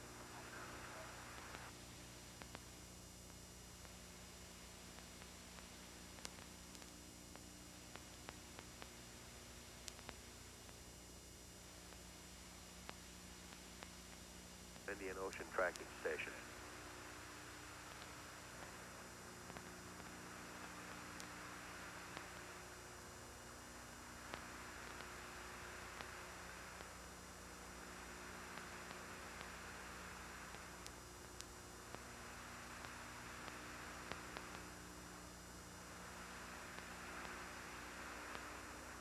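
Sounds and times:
faint steady hiss: 0.0 - 39.0
low mains hum: 0.0 - 39.0.

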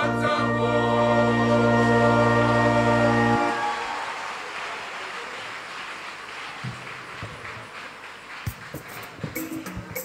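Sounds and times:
crowd applauding and cheering: 3.0 - 10.0.

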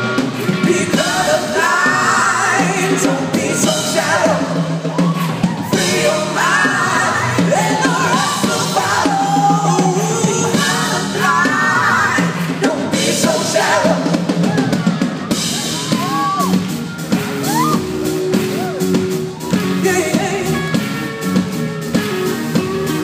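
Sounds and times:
bass: 0.0 - 23.0
drum kit: 0.0 - 23.0
man singing lead vocals: 0.5 - 4.8, 5.7 - 14.3, 19.6 - 21.0
backing vocals: 0.5 - 16.2.

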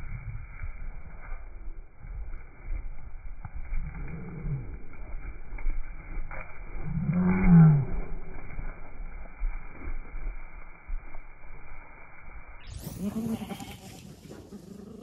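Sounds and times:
sheep bleating: 12.8 - 14.1.

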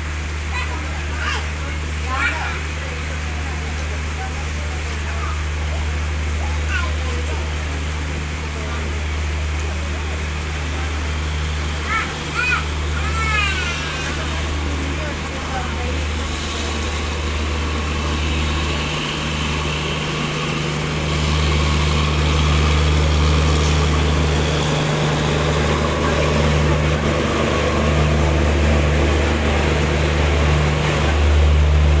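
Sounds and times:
diesel generator hum: 0.0 - 32.0
train coaches rolling past: 0.0 - 32.0.

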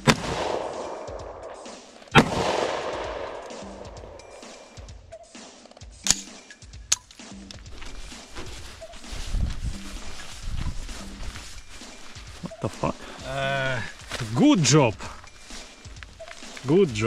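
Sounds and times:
rifle shots: 0.0 - 1.6, 2.2 - 4.2
background music: 0.0 - 17.0.

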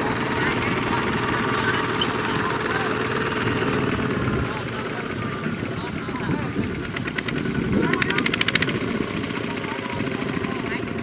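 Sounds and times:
diesel tractor engine running: 0.0 - 11.0
fast even clatter: 6.0 - 11.0.

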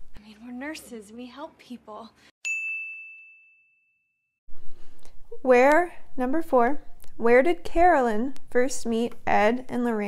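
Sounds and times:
bright ding: 2.4 - 4.0.

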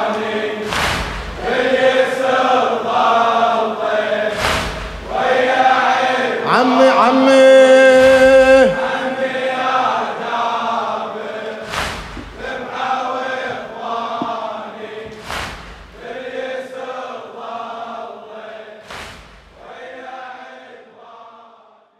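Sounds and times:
men chanting: 1.4 - 15.3, 16.0 - 18.8.

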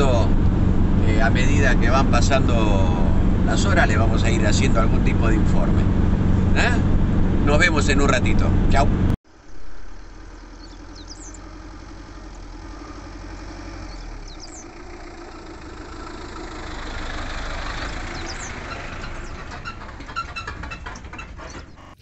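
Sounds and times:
van engine hum: 0.0 - 22.0
bird chirps: 9.4 - 11.6, 13.8 - 14.8, 17.9 - 19.5.

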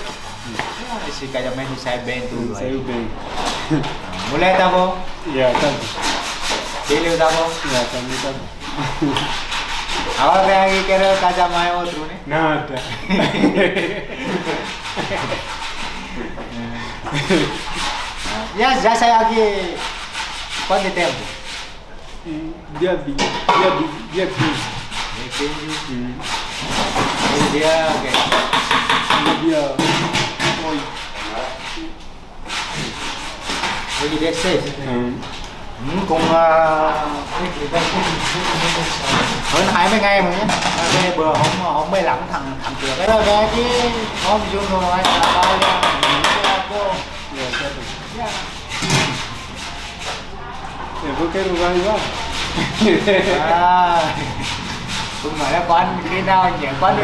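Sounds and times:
rapid scraping strokes: 0.0 - 12.2, 13.2 - 22.5, 23.4 - 57.0
men laughing and talking: 0.8 - 5.9, 6.9 - 9.5, 10.2 - 19.7, 35.8 - 48.2, 51.1 - 57.0.

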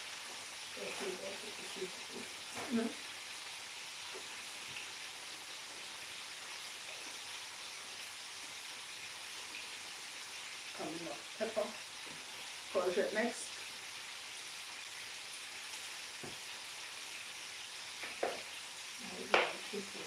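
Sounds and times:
fish sizzling in hot oil: 0.0 - 20.0.

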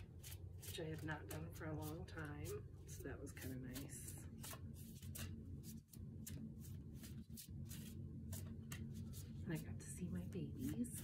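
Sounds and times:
cards being shuffled: 0.0 - 9.8, 10.5 - 11.0
faint steady hum: 0.0 - 11.0.

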